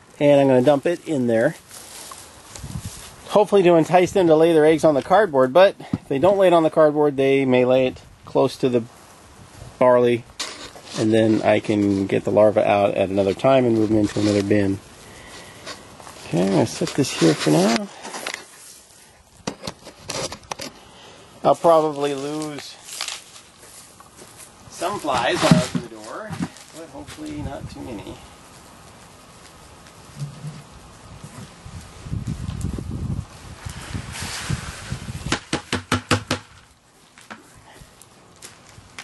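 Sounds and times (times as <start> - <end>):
soft rustle: 0.4 - 3.5, 8.6 - 35.3
low rumble of handling: 27.8 - 33.4
wet grain sliding: 33.6 - 35.0
sharp knocks: 35.3 - 36.6.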